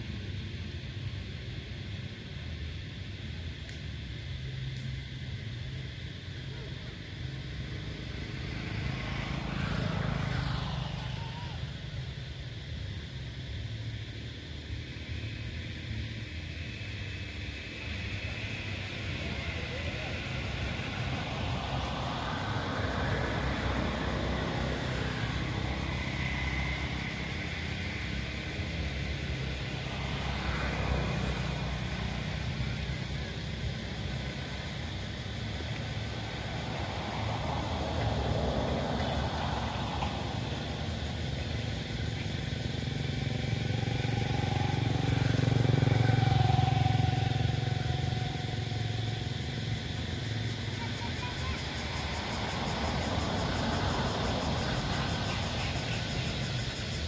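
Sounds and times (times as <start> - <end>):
traffic passing: 0.0 - 57.0.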